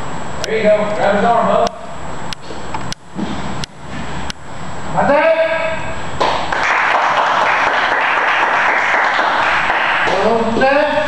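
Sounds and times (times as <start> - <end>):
sharp slaps: 6.2 - 7.8
people applauding: 6.2 - 10.3.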